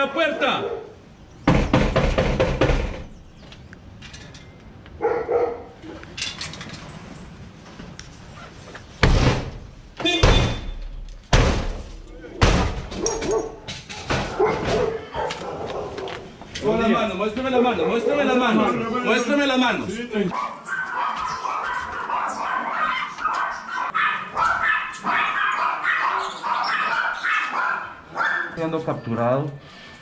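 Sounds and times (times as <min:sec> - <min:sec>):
blows banging on metal door: 0:01.4 - 0:03.4, 0:08.9 - 0:15.1.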